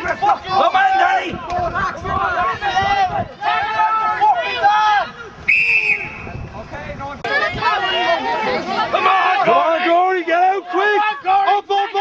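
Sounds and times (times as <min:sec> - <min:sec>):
spectators shouting: 0:00.0 - 0:06.4, 0:07.2 - 0:12.0
referee's whistle blast: 0:05.5 - 0:06.4.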